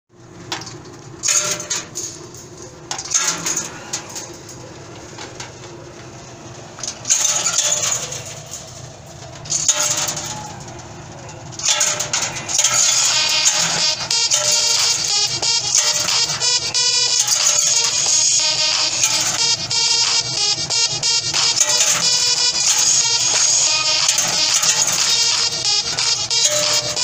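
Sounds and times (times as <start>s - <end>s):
machine humming: 0.1s - 27.0s.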